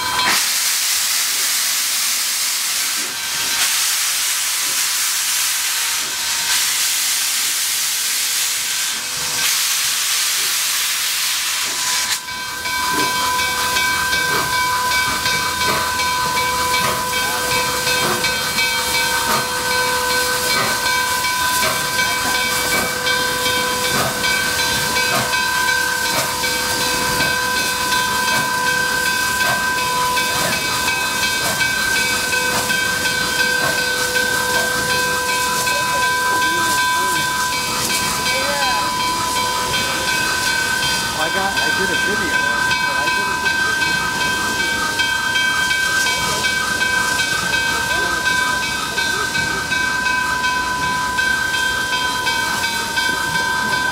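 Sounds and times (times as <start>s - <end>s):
steam locomotive hissing steam: 0.0s - 53.9s
steady high-pitched tone: 12.1s - 53.9s.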